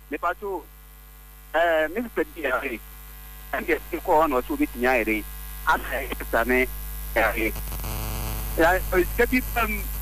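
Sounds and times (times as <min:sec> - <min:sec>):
low mains hum: 0:00.0 - 0:10.0
person speaking: 0:03.5 - 0:07.6.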